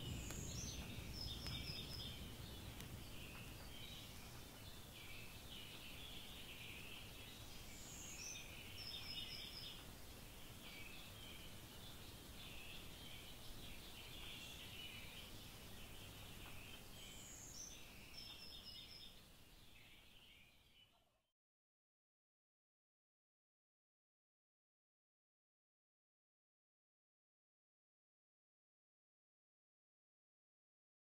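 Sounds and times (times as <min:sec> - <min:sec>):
birds chirping: 0:00.0 - 0:21.1
outdoor background noise: 0:00.0 - 0:21.3.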